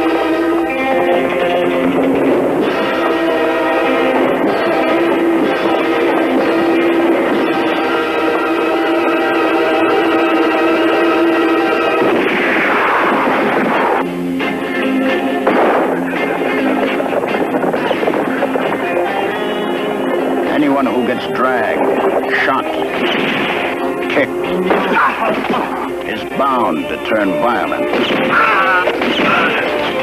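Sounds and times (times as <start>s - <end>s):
dramatic orchestral music: 0.0s - 30.0s
crashing action noise: 12.0s - 14.1s, 15.3s - 19.1s, 22.9s - 23.9s, 27.9s - 29.7s
gunfire: 12.0s - 14.1s, 15.2s - 19.4s, 22.9s - 23.8s, 24.7s - 25.8s, 27.9s - 30.0s.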